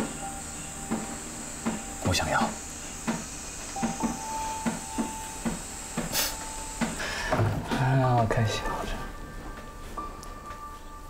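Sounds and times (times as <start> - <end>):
light ticking beat: 0.0 - 7.1
soft background music: 0.0 - 11.0
steady hiss: 0.0 - 11.0.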